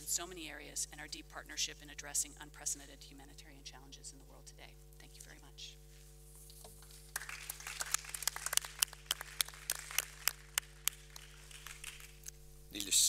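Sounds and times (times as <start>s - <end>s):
audience applause: 7.1s - 12.2s.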